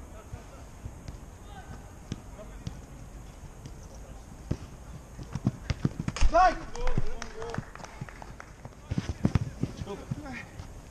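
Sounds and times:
faint distant shouts: 1.4s - 2.8s
footsteps running on artificial turf: 4.5s - 10.9s.

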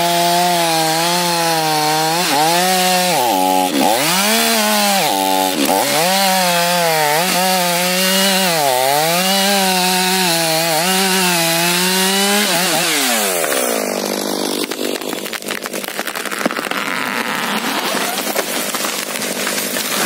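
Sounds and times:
chainsaw sawing through wood: 0.0s - 20.0s
tree trunk crackling: 0.0s - 20.0s.

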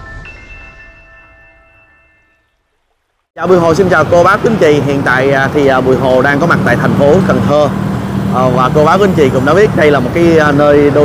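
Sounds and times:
chime jingle: 0.0s - 2.6s.

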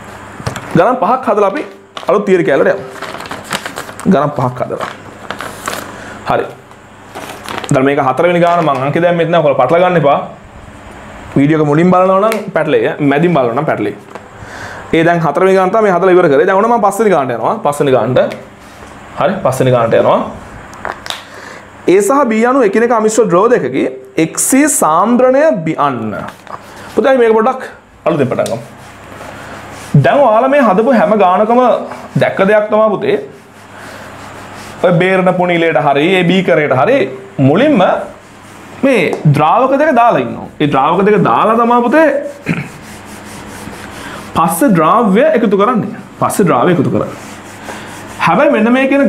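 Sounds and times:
man speaking: 0.7s - 3.0s, 7.7s - 10.4s, 19.2s - 20.4s, 27.0s - 28.8s, 29.9s - 33.4s, 34.8s - 38.2s, 38.8s - 42.7s, 44.4s - 47.2s, 48.2s - 49.0s
duster scrubbing whiteboard: 28.1s - 36.4s, 37.6s - 45.7s, 46.3s - 49.0s.

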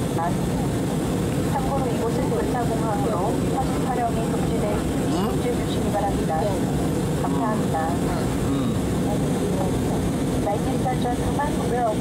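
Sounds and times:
airliner cabin rumble: 0.0s - 12.0s
faint muffled voices: 1.5s - 12.0s.

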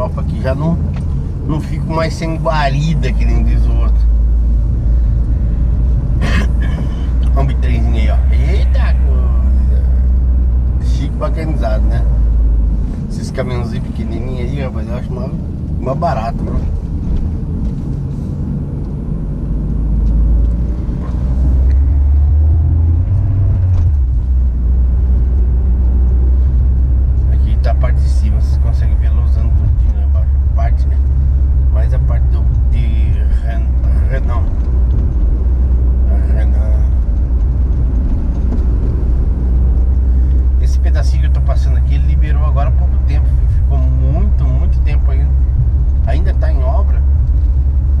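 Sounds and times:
car engine and tyre drone: 0.0s - 48.0s.

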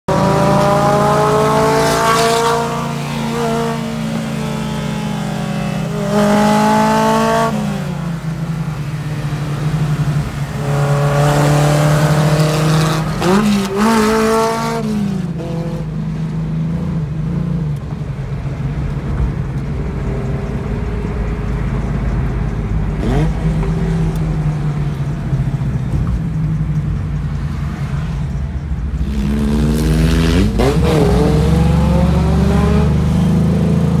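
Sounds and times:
car engine revving hard: 0.1s - 7.8s, 10.5s - 15.8s, 29.0s - 34.0s
road rumble: 0.1s - 34.0s.

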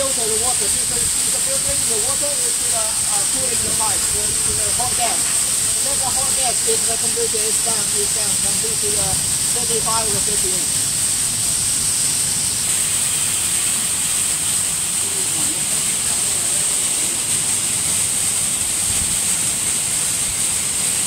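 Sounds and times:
cooling water spraying with hiss: 0.0s - 21.0s.

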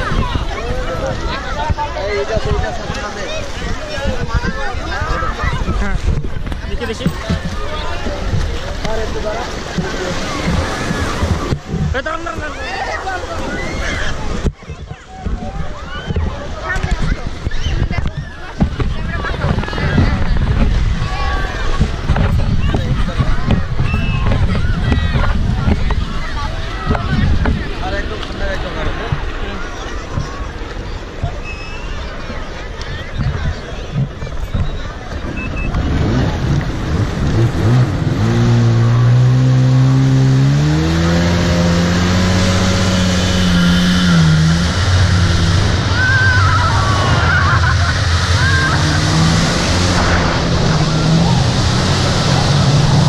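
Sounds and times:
chatter of many voices: 0.0s - 53.0s
wind rumbling on microphone: 0.0s - 53.0s
jet ski engine revving: 5.4s - 14.5s, 35.1s - 53.0s.

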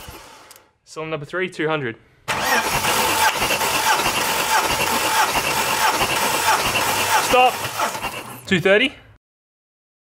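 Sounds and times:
engine cranking on starter motor: 0.0s - 0.7s, 2.3s - 8.5s.

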